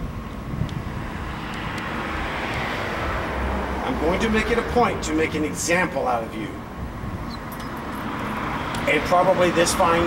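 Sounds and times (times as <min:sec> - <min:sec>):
wind rumble on microphone: 0:00.0 - 0:05.5, 0:06.4 - 0:08.8
vehicle passing: 0:00.8 - 0:10.0.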